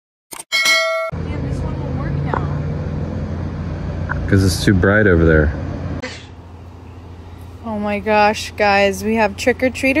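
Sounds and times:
bright bell-like ding: 0:00.5 - 0:01.2
steady low hum: 0:01.2 - 0:10.0.

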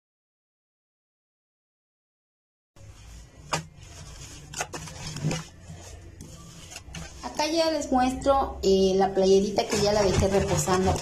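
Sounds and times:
cloth scrubbing on washboard: 0:02.8 - 0:07.7, 0:09.6 - 0:11.0.

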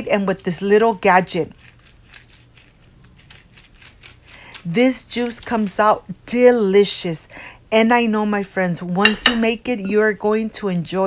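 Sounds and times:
lemon squishing in juicer: 0:00.0 - 0:06.0.

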